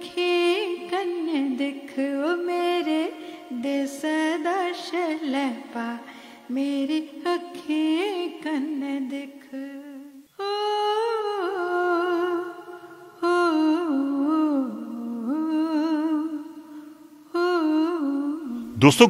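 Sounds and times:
short breaths: 6.1s - 6.5s.

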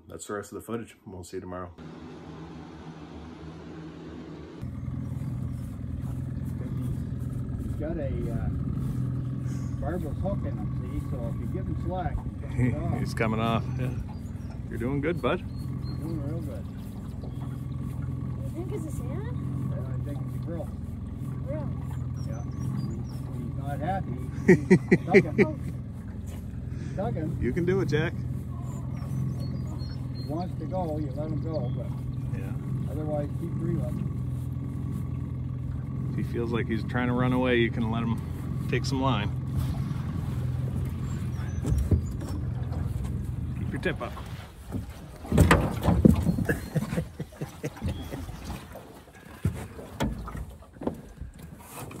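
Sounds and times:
outboard motor idling: 1.8s - 52.0s
knocks in aluminum boat: 41.6s - 43.7s, 44.7s - 46.5s.

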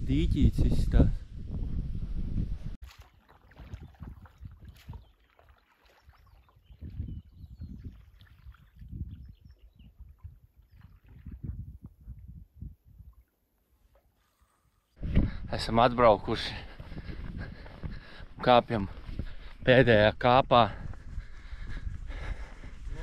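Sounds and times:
paddle pulling through water: 2.8s - 11.6s, 13.6s - 15.0s
water lapping: 2.8s - 11.6s, 16.4s - 19.6s.

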